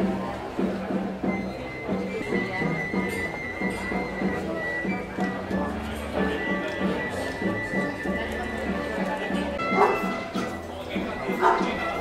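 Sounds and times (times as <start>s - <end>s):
people talking: 0.0s - 12.0s
procession band music: 1.6s - 12.0s.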